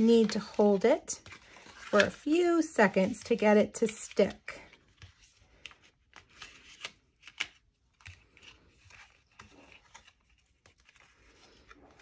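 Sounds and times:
paper clicks and scrapes: 0.0 - 2.3
cardstock rustling and crinkling: 0.0 - 12.0.

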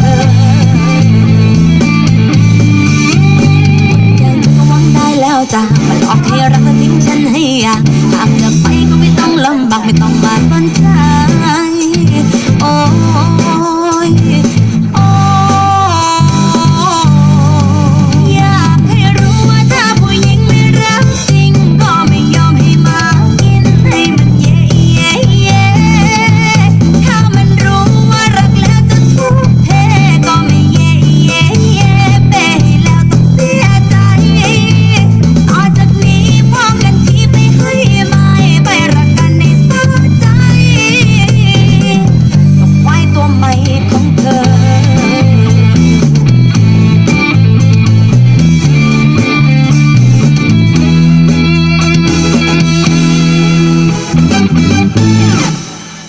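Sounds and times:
person singing: 0.0 - 47.6
backing song with drums: 0.0 - 56.0
electric bass guitar plucked: 0.0 - 56.0.

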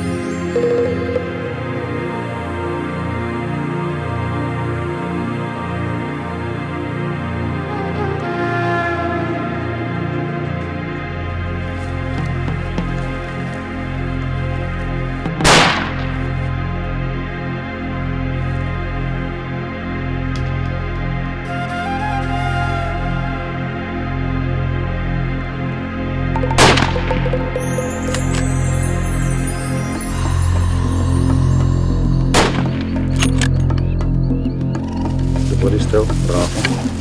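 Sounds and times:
background music: 0.0 - 37.0
rifle shot: 15.4 - 16.1, 26.6 - 27.2
rifle shot with echo: 15.5 - 16.1.

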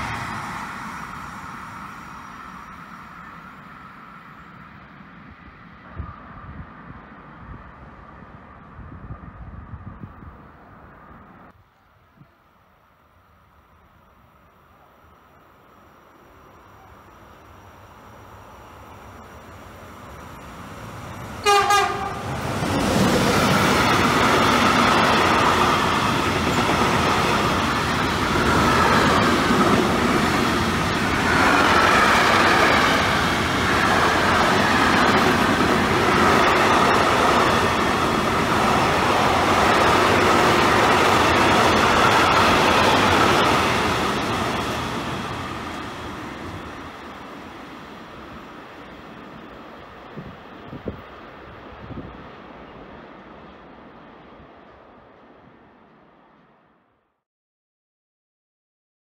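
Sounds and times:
freight train wheels on rails: 0.0 - 11.6, 14.6 - 56.5
train horn blast: 21.4 - 22.3.

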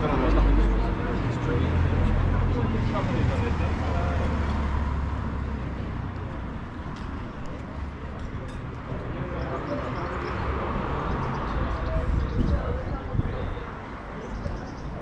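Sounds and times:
street ambience: 0.0 - 15.0.

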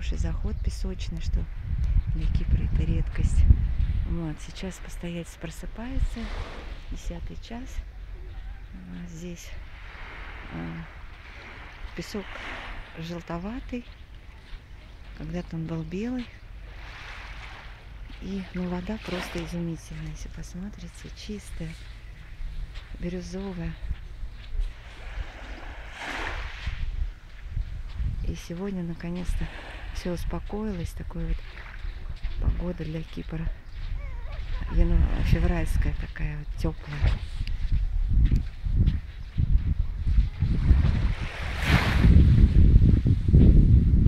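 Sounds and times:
wind rumble on microphone: 0.0 - 44.0
waves lapping onto sandy shore: 0.8 - 7.8, 8.9 - 39.2, 40.1 - 42.8
small wave washing up shore: 24.8 - 27.0.

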